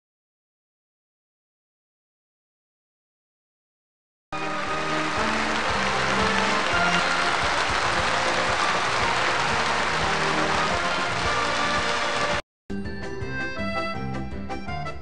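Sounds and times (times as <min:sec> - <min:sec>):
audience applause: 0:04.4 - 0:12.4
music: 0:04.4 - 0:15.0.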